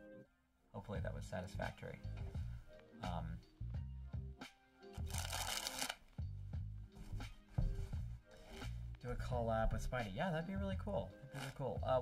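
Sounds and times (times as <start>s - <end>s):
background music with bass line: 0.9s - 12.0s
playing cards being riffled: 4.9s - 6.2s, 11.3s - 11.6s.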